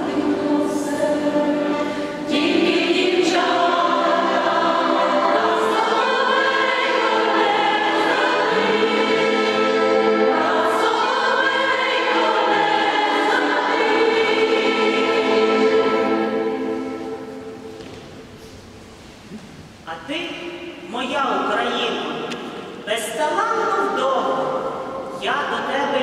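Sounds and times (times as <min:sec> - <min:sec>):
women's choir singing in harmony: 0:00.0 - 0:17.9.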